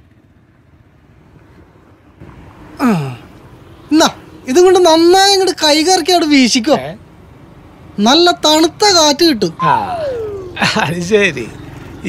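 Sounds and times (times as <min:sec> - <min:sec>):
road noise: 0:00.0 - 0:12.0
vehicle engine rumble: 0:00.0 - 0:12.0.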